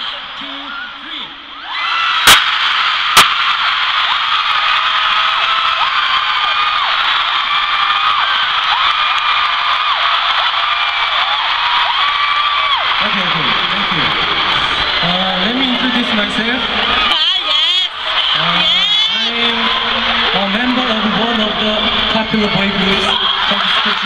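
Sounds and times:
crowd screaming: 0.0 - 24.0.

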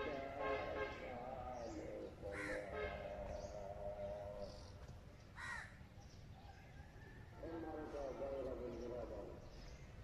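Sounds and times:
crow cawing: 2.3 - 2.7, 5.4 - 5.8.

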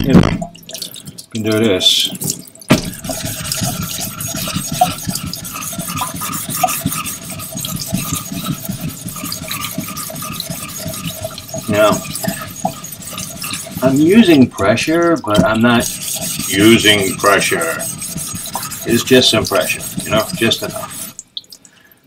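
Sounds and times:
running water: 0.0 - 22.0
plate rubbing on wet whetstone: 2.7 - 21.2.

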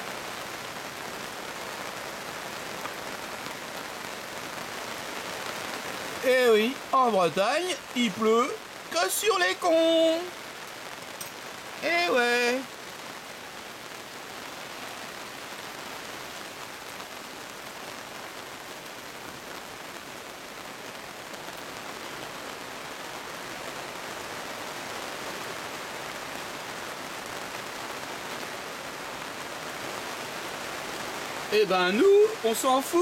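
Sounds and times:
steady rain falling: 0.0 - 33.0.

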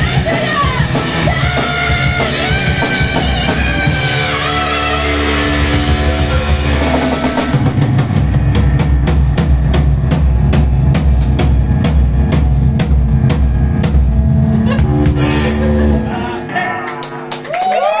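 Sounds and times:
bass guitar: 0.0 - 18.0
electric guitar: 0.0 - 18.0
drum kit hits: 5.1 - 17.4.

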